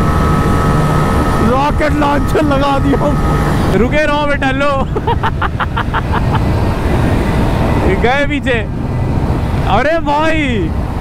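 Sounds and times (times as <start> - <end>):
road roar: 0.0 - 11.0
wind rush on microphone: 0.0 - 11.0.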